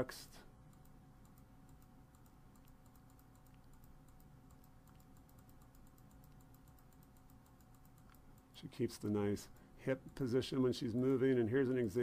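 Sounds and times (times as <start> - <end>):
faint electrical hum: 0.0 - 12.0
rapid keyboard clicks: 0.6 - 12.0.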